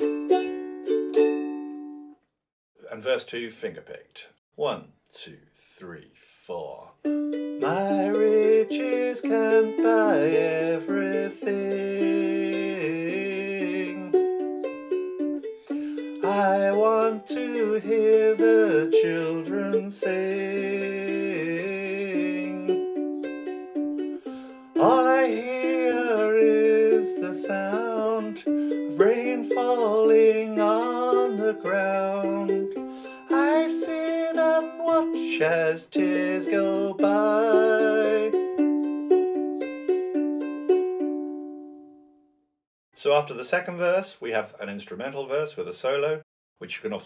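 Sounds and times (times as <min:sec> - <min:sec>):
ukulele finger-picked: 0:00.0 - 0:02.1, 0:07.0 - 0:41.8
man singing: 0:07.6 - 0:14.2, 0:16.2 - 0:22.8, 0:24.7 - 0:38.4.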